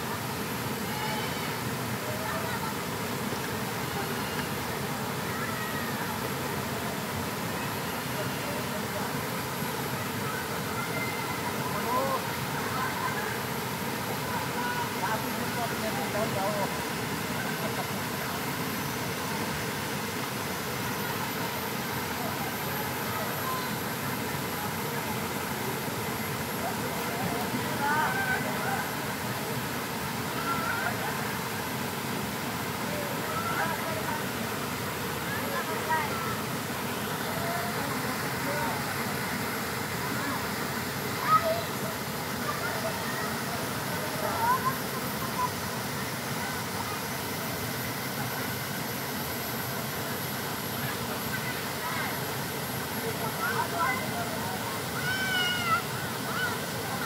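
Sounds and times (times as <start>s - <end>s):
waterfall pouring into pool: 0.1s - 57.0s.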